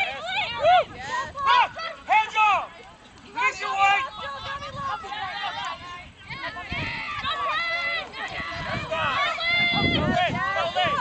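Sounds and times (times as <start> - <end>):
people shouting: 0.0 - 2.7, 3.3 - 11.0.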